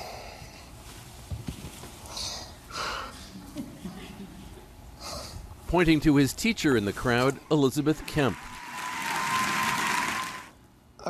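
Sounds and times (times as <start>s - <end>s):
audience applauding: 7.8s - 10.6s.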